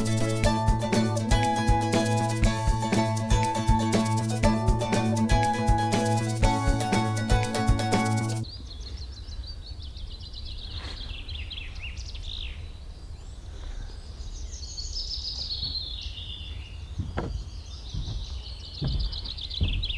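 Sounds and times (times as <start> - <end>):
songbirds singing: 8.4 - 19.9
wind rumble on microphone: 16.9 - 19.9
short knocks: 17.0 - 19.9.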